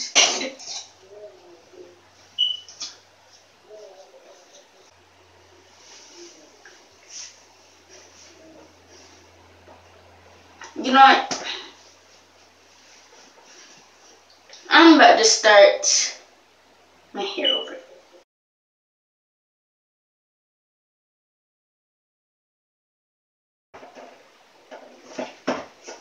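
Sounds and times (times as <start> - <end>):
steady low hum: 0.0 - 18.2.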